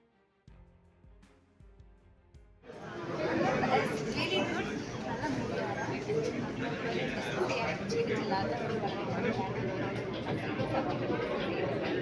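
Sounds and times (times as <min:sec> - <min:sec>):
people talking at once: 0:02.7 - 0:12.0.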